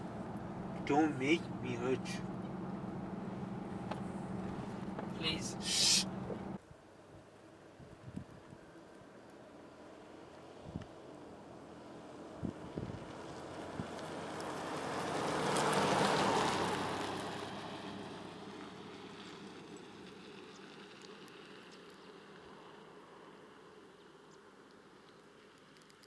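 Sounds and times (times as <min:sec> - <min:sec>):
vehicle driving past: 0:00.0 - 0:06.6, 0:13.0 - 0:20.8.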